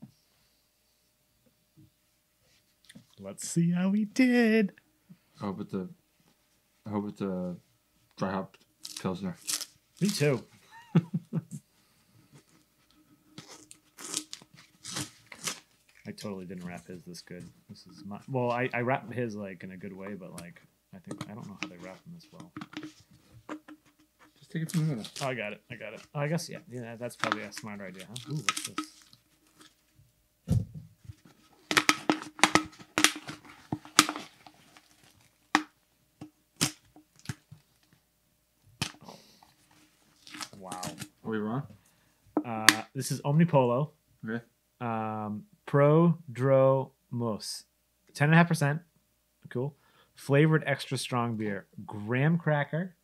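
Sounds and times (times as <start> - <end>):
tape peeling and tearing: 8.8 - 10.4, 13.3 - 16.1, 24.6 - 25.4, 36.6 - 37.5, 40.2 - 41.1
wrapping crinkling and tearing: 8.8 - 10.4, 13.4 - 16.1, 24.7 - 25.4, 27.0 - 29.8, 31.6 - 35.4, 40.1 - 41.1
low thump: 30.5 - 30.9.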